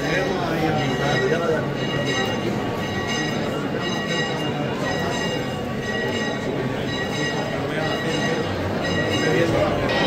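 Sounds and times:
church bells ringing: 0.0 - 10.0
crowd chatter: 0.0 - 10.0.

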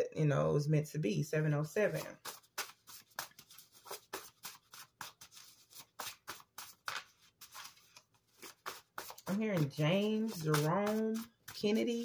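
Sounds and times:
paper cards being shuffled: 1.9 - 12.0.

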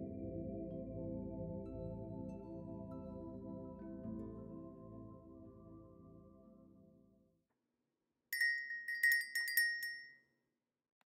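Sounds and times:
soft music: 0.0 - 7.3.

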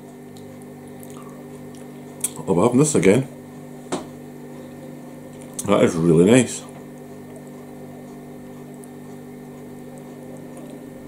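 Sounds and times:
faint chewing: 0.0 - 2.5, 4.4 - 5.7, 6.6 - 11.0
freezer electrical buzzing: 0.0 - 11.0.

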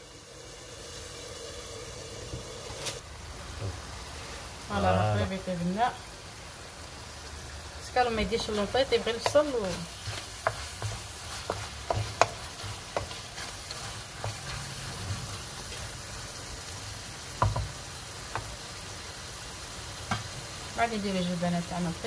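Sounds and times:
chicken sizzling in a pan: 0.0 - 22.0
wooden spoon knocking pan: 8.4 - 15.3, 17.4 - 18.5.

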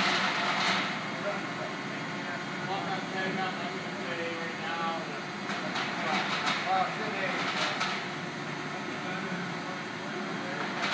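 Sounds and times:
machinery hum: 0.0 - 10.9.

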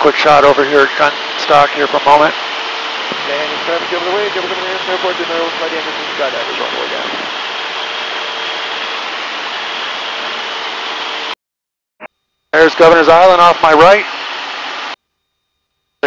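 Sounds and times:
aircraft engine and propeller drone: 0.0 - 11.4, 12.6 - 15.0
wind rushing: 2.3 - 11.3.

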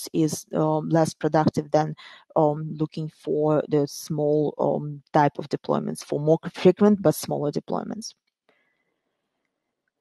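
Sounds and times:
woman speaking: 0.0 - 8.1.

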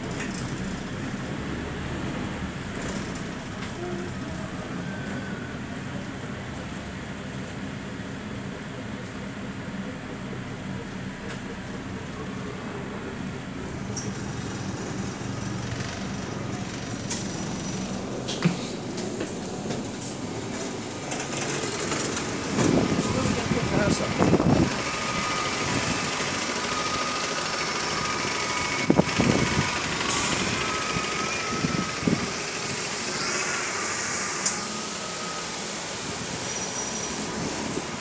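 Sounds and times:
bus engine running with whine: 0.0 - 38.0
street traffic noise: 0.0 - 38.0.

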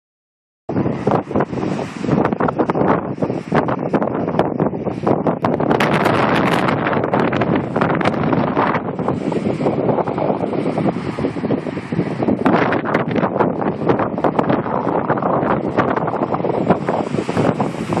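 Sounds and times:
ocean surf rushing: 0.7 - 18.0
wind buffeting microphone: 0.7 - 18.0.

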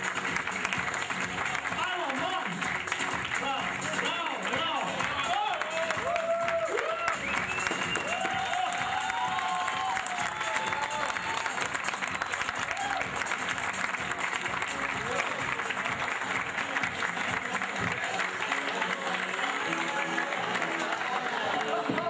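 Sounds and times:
audience clapping: 0.0 - 22.0
music: 0.0 - 22.0
man's voice: 1.7 - 2.6, 3.3 - 5.9, 16.9 - 22.0.

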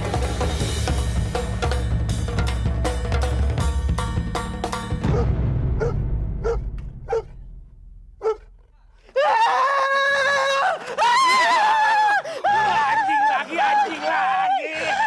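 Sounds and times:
low dramatic music: 0.1 - 9.0
man screaming: 9.1 - 15.0.

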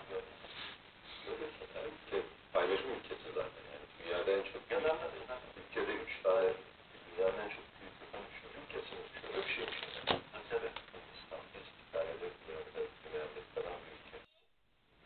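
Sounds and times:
men talking on television: 0.0 - 14.4.

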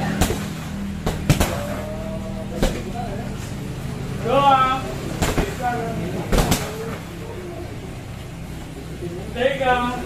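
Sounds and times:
kicks thudding on punching bags: 0.0 - 1.8, 5.2 - 6.9
steady low hum: 0.0 - 10.0.

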